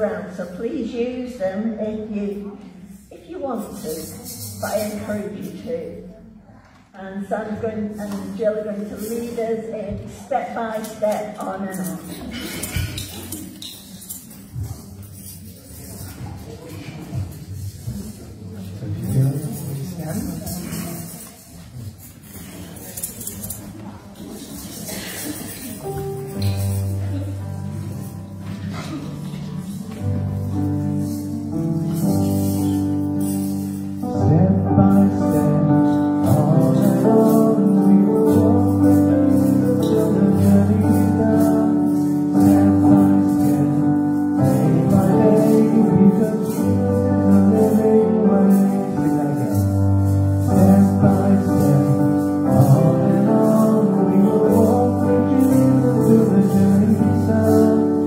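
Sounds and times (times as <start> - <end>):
congregation murmur and shuffling: 0.0 - 58.0
faint high rustles: 12.0 - 34.0
instrumental accompaniment: 24.2 - 58.0
congregation singing a worship song: 34.2 - 58.0.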